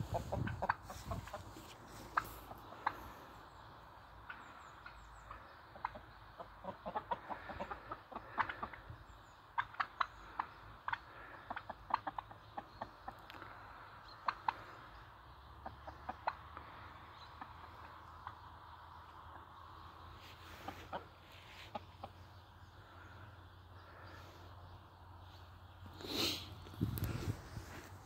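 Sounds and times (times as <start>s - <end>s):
chickens clucking: 0.0s - 28.0s.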